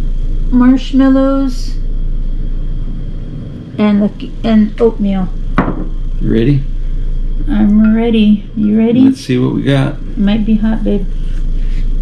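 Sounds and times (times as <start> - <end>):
low background rumble and hum: 0.0 - 12.0
person speaking a word: 6.2 - 6.6, 8.6 - 10.2.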